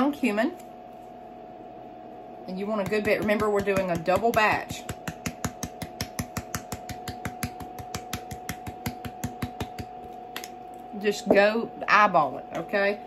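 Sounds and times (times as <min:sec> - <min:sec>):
steady high hum: 0:00.0 - 0:13.0.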